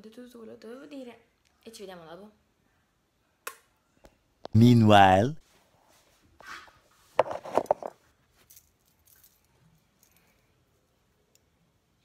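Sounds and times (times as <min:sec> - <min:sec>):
soft rustle: 0:05.4 - 0:11.0.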